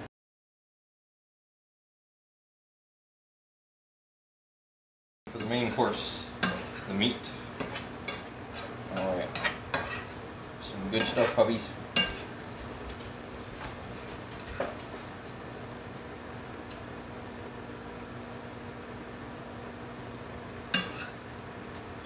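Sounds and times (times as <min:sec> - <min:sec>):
steady low hum: 0:05.3 - 0:22.0
metal spoon clinking on pans: 0:06.4 - 0:07.0, 0:07.6 - 0:10.2, 0:11.0 - 0:12.3, 0:20.7 - 0:21.2.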